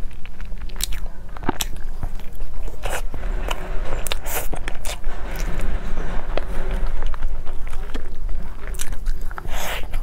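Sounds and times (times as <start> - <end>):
chewing soft food: 0.0 - 3.0.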